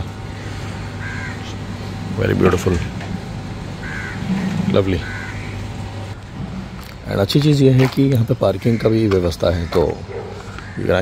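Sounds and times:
steady low hum: 0.0s - 11.0s
crow cawing: 0.2s - 2.0s, 3.6s - 6.2s, 8.4s - 11.0s.

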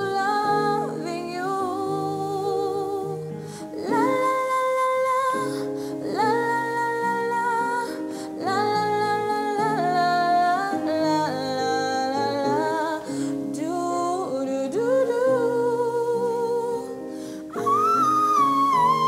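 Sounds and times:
electronic keyboard chords: 0.0s - 19.0s
woman singing a slow ballad: 0.0s - 19.0s.

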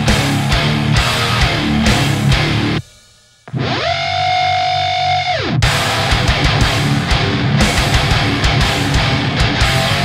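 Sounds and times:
distorted electric guitar whammy bends: 0.0s - 2.8s, 3.4s - 10.0s.

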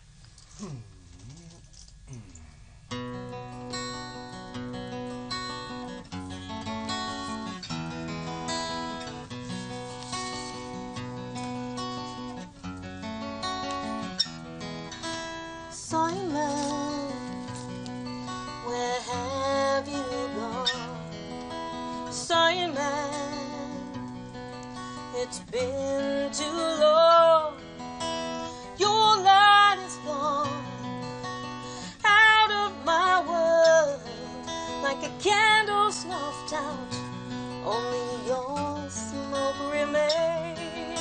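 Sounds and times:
acoustic guitar playing: 2.8s - 41.0s
woman singing wordlessly: 15.7s - 17.7s, 18.3s - 21.1s, 21.7s - 24.2s, 25.0s - 27.7s, 28.7s - 31.0s, 31.8s - 41.0s.

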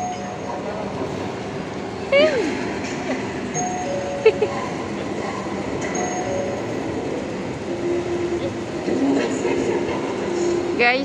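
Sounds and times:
continuous noisy hum: 0.0s - 11.0s.

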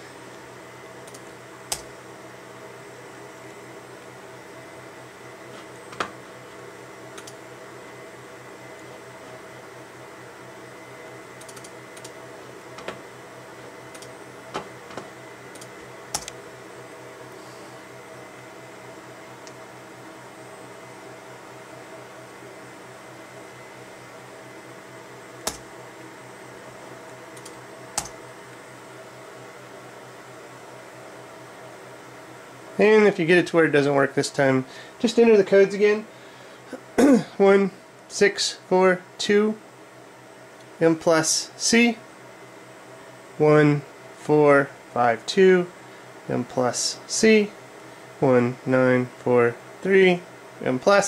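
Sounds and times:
low hum with high tone: 0.0s - 51.0s.

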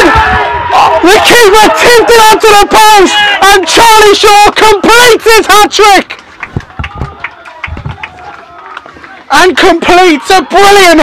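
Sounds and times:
faint crowd shouts and cheers: 0.0s - 11.0s
scattered claps: 5.5s - 10.2s.

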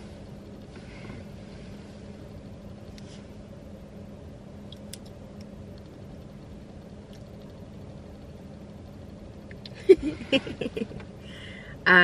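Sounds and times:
low hum inside car: 0.0s - 12.0s.

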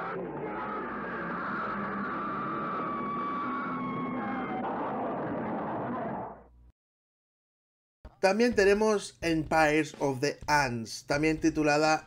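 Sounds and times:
high siren-like tone: 0.0s - 6.4s.

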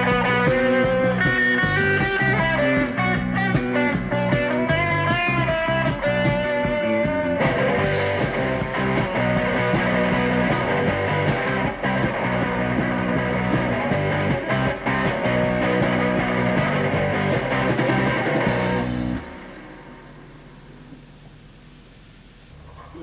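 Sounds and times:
punk band playing: 0.0s - 21.5s
tape hiss: 0.0s - 23.0s.

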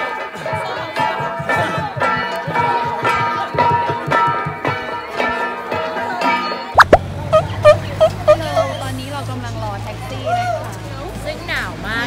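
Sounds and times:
music with percussion: 0.3s - 6.0s
sharp sliding pop effect: 6.8s - 7.5s
bouncy plop notes: 6.8s - 8.7s.

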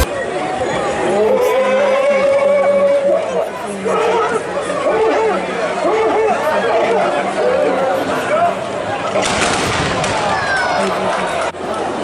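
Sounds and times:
crowd shouting and calling out: 0.0s - 12.0s.

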